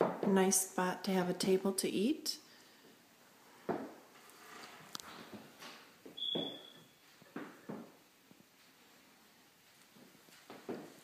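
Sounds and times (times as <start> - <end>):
footsteps on hard floor: 5.0 - 9.0, 9.6 - 11.0.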